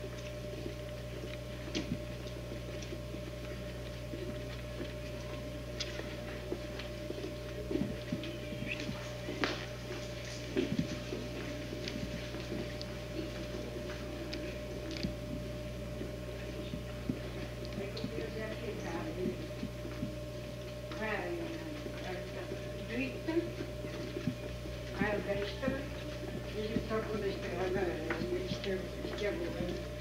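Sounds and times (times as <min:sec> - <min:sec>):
constant mid-pitched tone: 0:00.0 - 0:30.0
low electrical hum: 0:00.0 - 0:30.0.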